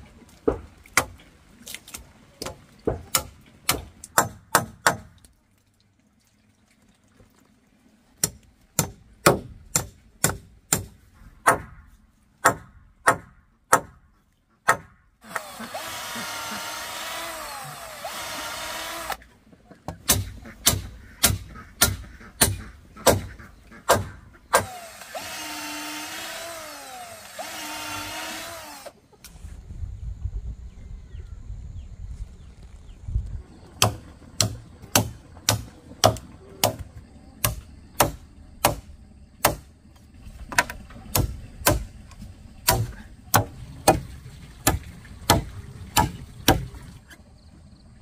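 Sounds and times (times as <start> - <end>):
sharp blows on wood: 12.4 - 14.0, 20.0 - 28.8, 42.6 - 44.0
power drill whining: 15.2 - 19.2, 24.6 - 29.0.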